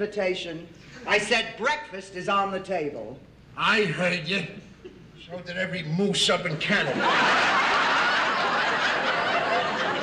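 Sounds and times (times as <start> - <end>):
audience laughing: 6.7 - 10.0.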